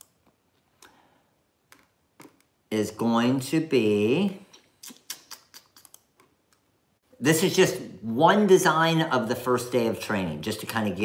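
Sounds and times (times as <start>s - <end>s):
computer mouse clicking: 5.2s - 6.7s.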